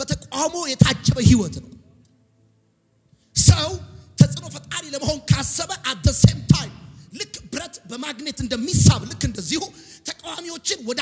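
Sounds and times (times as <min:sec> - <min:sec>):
man preaching into a microphone: 0:00.0 - 0:01.9, 0:03.3 - 0:11.0.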